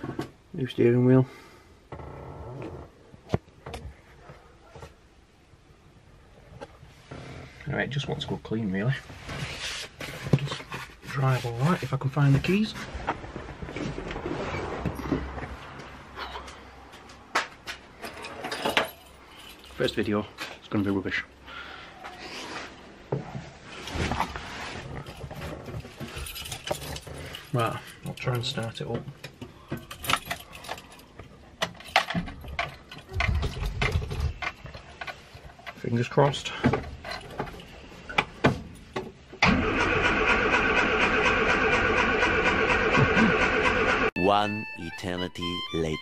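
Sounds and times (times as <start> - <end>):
starter motor cranking: 39.4 - 44.1.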